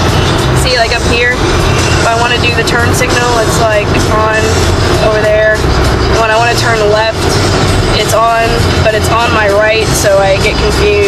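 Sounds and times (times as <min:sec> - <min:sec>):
car road and engine rumble: 0:00.0 - 0:11.0
woman talking: 0:00.6 - 0:01.4, 0:02.0 - 0:11.0.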